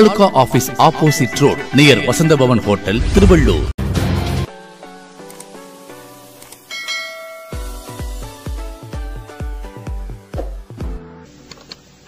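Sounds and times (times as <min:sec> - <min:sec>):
bright bell chime: 0:06.7 - 0:07.9
electronic beat with kick drum: 0:07.6 - 0:11.0.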